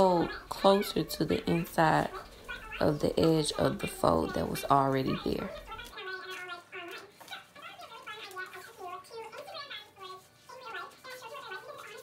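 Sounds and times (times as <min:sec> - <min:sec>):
quiet high-pitched voice: 0:00.0 - 0:12.0.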